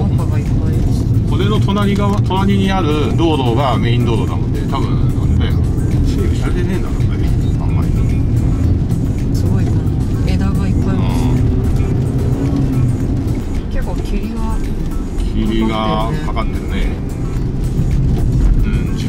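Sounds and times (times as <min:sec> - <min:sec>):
background music: 0:00.0 - 0:19.0
car engine and tyres rumbling: 0:00.0 - 0:19.0.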